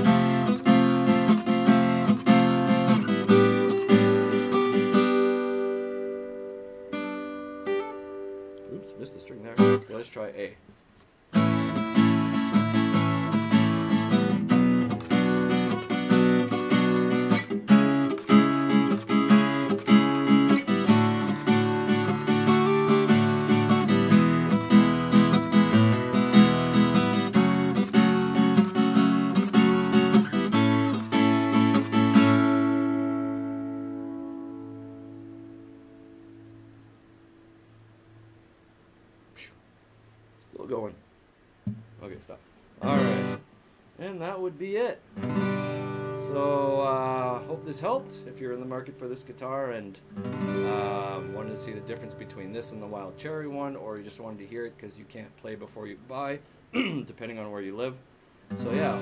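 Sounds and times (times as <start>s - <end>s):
acoustic guitar strumming: 0.0s - 10.3s, 11.0s - 38.6s, 41.6s - 42.2s, 42.8s - 43.6s, 44.2s - 55.6s, 56.2s - 57.5s, 58.4s - 59.0s.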